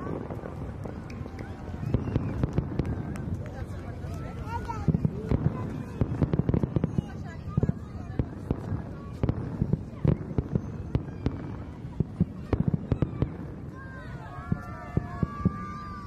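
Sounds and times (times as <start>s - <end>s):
fireworks bangs and crackles: 0.0s - 16.0s.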